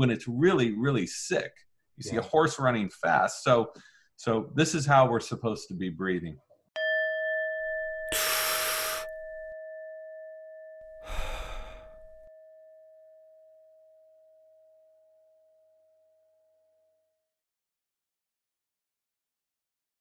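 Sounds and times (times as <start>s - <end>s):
chime ringing: 6.8s - 13.0s
person sighing: 8.1s - 9.1s, 11.0s - 12.2s
person breathing in deeply: 8.1s - 9.4s, 11.0s - 12.3s.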